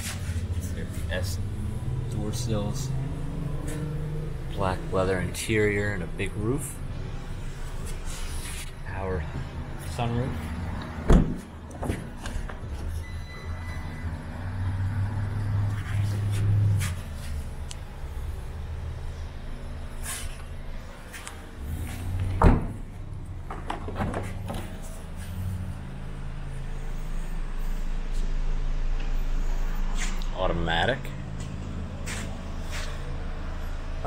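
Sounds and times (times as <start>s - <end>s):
steady low hum: 0.0s - 34.0s
car door shutting thud: 11.1s - 12.1s, 22.4s - 22.8s.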